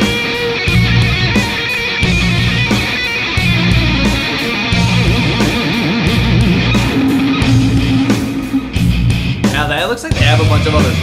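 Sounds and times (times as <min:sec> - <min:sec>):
heavy electric guitar riff: 0:00.0 - 0:09.8.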